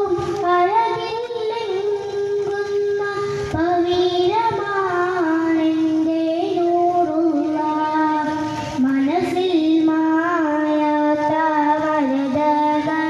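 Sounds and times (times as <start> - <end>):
boy singing devotional song: 0.0 - 13.0
breath: 8.4 - 8.8.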